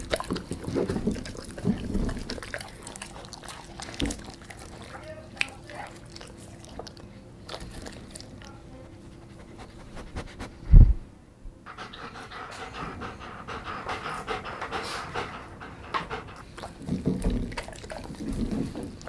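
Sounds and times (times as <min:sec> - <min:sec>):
dog panting: 0:00.0 - 0:10.8, 0:11.6 - 0:19.0
low thump: 0:10.7 - 0:11.0.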